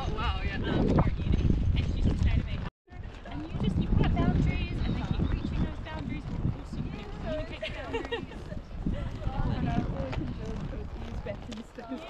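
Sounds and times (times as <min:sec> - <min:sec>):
horse hooves clip-clopping on dirt: 0:00.0 - 0:12.0.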